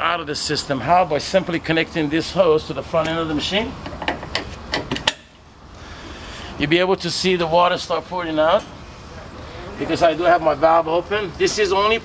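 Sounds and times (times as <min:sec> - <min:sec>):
hose coupling metallic clicks: 0:03.8 - 0:05.3.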